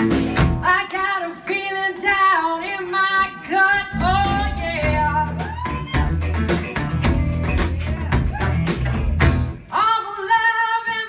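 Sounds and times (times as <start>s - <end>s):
guitar and band playing: 0.0s - 1.2s, 3.1s - 9.8s
woman singing: 0.6s - 11.0s.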